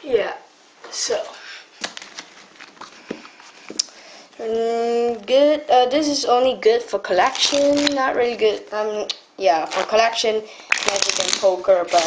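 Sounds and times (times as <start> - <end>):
playing cards clicking and sliding: 10.8 - 12.0.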